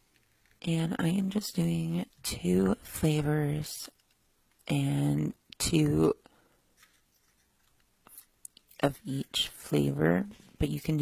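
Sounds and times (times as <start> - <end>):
person speaking: 0.6 - 3.9, 4.6 - 6.2, 8.1 - 11.0.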